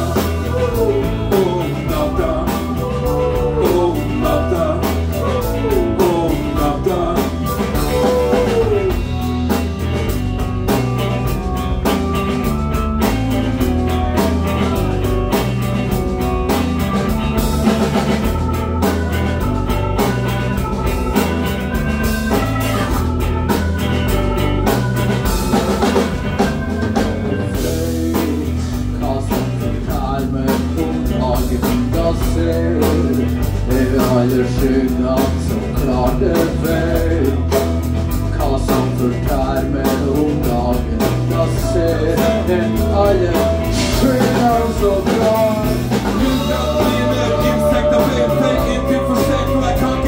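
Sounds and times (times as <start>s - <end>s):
rock band playing live: 0.0s - 50.0s.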